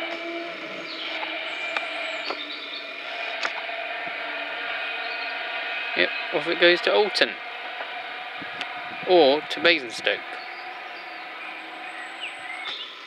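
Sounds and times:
electric train whine: 0.0 - 13.0.

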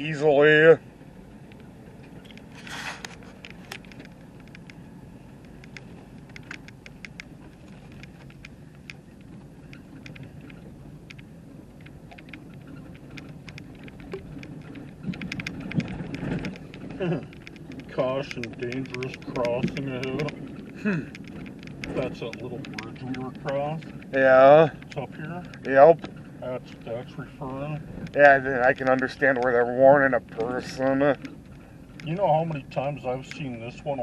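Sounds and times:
engine and tyres rumbling: 0.0 - 34.0
small ticks and rattles: 1.4 - 34.0.

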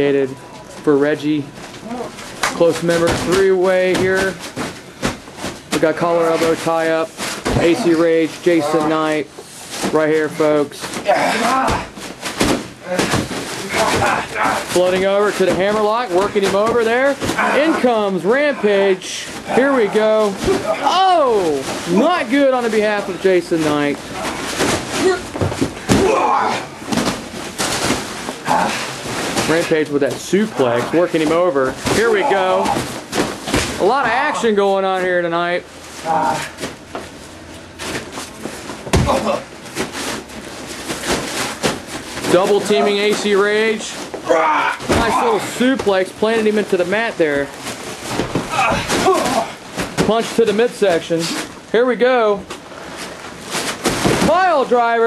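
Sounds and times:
person speaking: 12.8 - 24.4, 29.4 - 32.9, 42.3 - 47.6
bodies thudding on wrestling ring: 24.0 - 29.7, 38.2 - 40.2, 44.1 - 46.0, 47.6 - 50.2.

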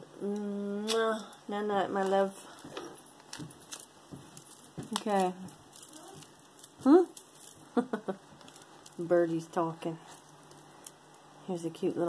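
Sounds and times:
jewelry clinking: 0.9 - 11.4.

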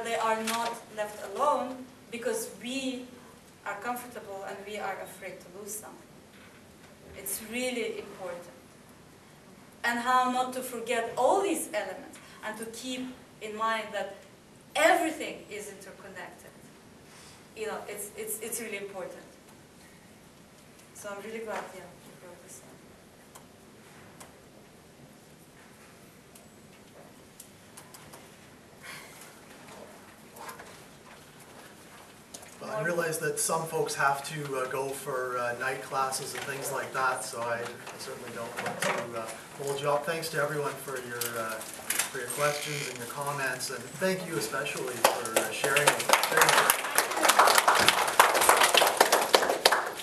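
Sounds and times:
steady low hiss: 0.0 - 50.0
small audience applauding: 44.5 - 50.0.

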